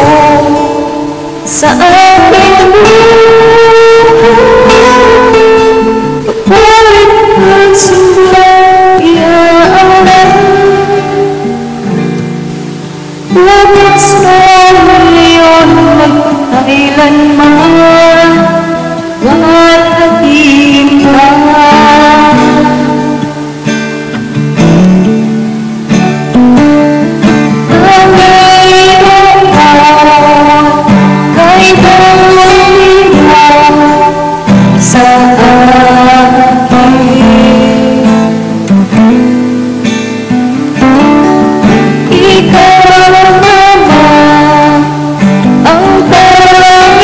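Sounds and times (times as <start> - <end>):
acoustic guitar backing track: 0.0 - 47.0
woman singing slow song: 0.0 - 47.0.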